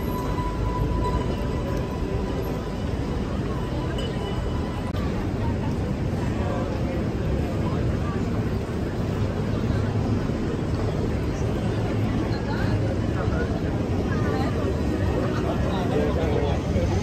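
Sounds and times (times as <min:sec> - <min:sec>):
low traffic rumble: 0:00.0 - 0:17.0
passers-by talking: 0:00.0 - 0:17.0.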